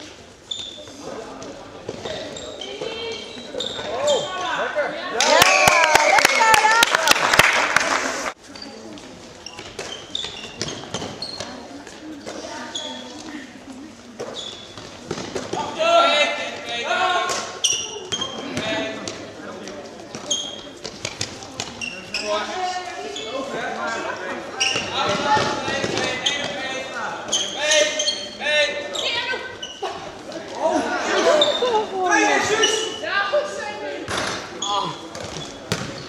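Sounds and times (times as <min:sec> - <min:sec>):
players calling in echoing hall: 0:00.0 - 0:36.0
short high squeaks: 0:00.4 - 0:00.9, 0:27.3 - 0:29.8
ball bouncing on floor: 0:35.2 - 0:36.0.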